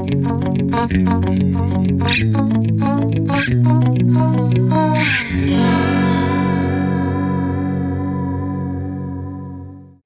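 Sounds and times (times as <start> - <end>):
electric guitar chord with chorus: 0.0 - 10.0.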